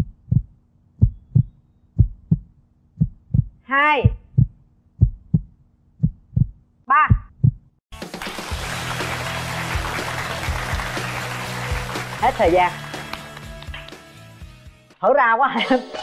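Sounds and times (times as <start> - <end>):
heartbeat thumps: 0.0 - 7.8.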